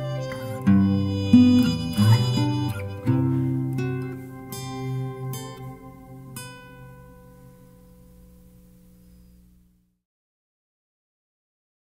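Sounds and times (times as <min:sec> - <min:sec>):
acoustic guitar chord ringing: 0:00.0 - 0:09.4.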